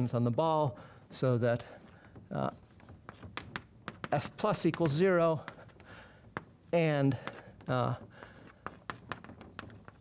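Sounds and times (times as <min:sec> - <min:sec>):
chalk tapping and scraping: 0:01.6 - 0:10.0.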